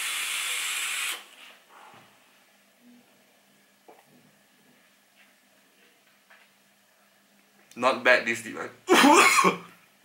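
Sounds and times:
air hissing through atomizer: 0:00.0 - 0:01.9.

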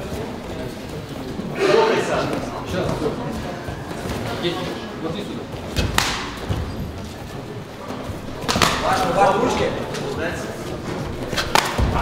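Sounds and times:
person shouting in echoing hall: 0:01.6 - 0:02.2
sharp slaps of strikes: 0:05.9 - 0:06.4, 0:08.5 - 0:08.9, 0:11.5 - 0:12.0.

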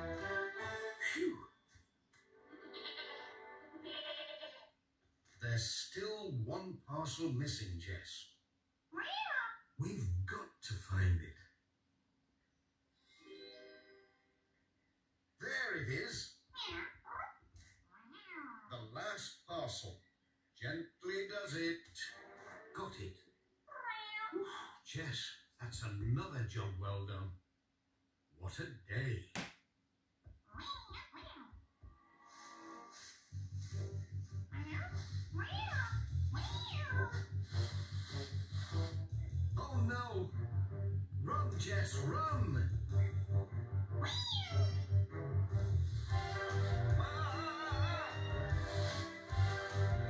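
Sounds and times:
background music: 0:00.0 - 0:01.6, 0:13.0 - 0:14.4, 0:32.0 - 0:50.0
cartoon cat meow on television: 0:02.5 - 0:04.8, 0:08.9 - 0:09.7, 0:16.6 - 0:18.9, 0:23.7 - 0:24.8, 0:30.5 - 0:31.6, 0:34.5 - 0:37.3, 0:44.0 - 0:45.0, 0:46.9 - 0:49.0.

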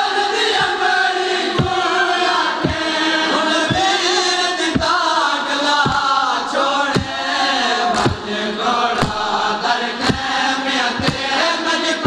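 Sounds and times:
men chanting in chorus: 0:00.0 - 0:12.0
hands striking chests: 0:09.0 - 0:09.4.

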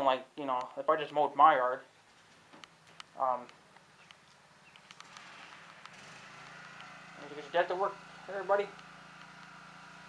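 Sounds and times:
faint engine hum: 0:02.6 - 0:10.0.

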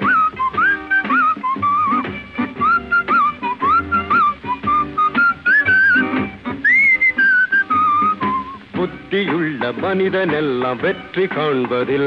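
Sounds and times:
whistled melody: 0:00.0 - 0:08.6
rhythmic band accompaniment: 0:00.0 - 0:12.0.

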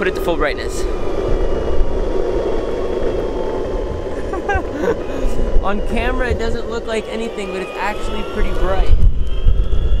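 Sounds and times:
skateboard wheels and motor rumbling: 0:00.0 - 0:10.0
wind on microphone: 0:00.0 - 0:10.0.

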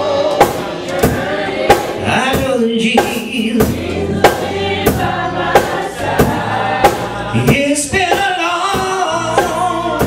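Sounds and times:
choir singing: 0:00.0 - 0:02.4, 0:03.4 - 0:08.2, 0:09.2 - 0:10.0
bass line: 0:00.0 - 0:10.0
drum kit beat: 0:00.0 - 0:10.0.

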